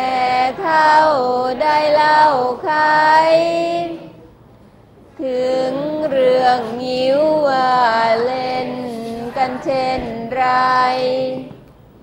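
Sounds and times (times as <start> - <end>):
students chanting verse: 0.0 - 4.3, 5.2 - 11.6.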